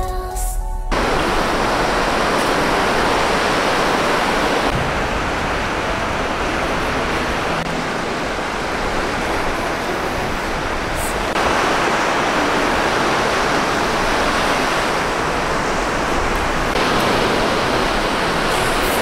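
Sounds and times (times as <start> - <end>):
ocean surf breaking on beach: 0.9 - 19.0.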